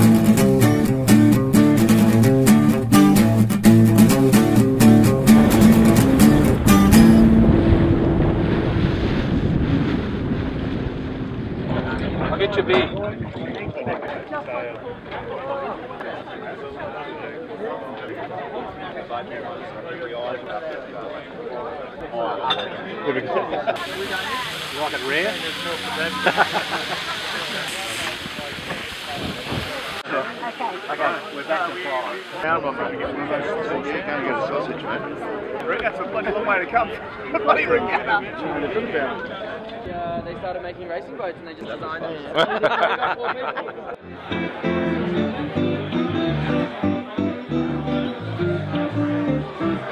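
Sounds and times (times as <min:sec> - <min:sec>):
wind buffeting microphone: 0:05.3 - 0:14.3, 0:27.9 - 0:30.0, 0:39.8 - 0:40.8
water rushing along a hull: 0:05.7 - 0:12.5, 0:23.8 - 0:32.5
people talking: 0:11.7 - 0:49.9
voices: 0:11.7 - 0:49.9
food sizzling on a barbecue: 0:23.8 - 0:32.5.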